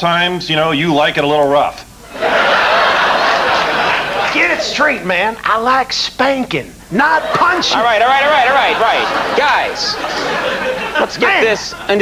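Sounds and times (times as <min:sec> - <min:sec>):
man speaking: 0:04.2 - 0:12.0
murmur of many voices: 0:07.2 - 0:11.9.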